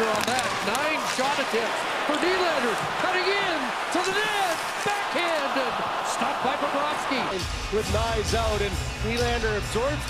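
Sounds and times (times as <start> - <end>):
game broadcast noise: 0.0 - 9.2
hockey commentary: 0.0 - 10.0.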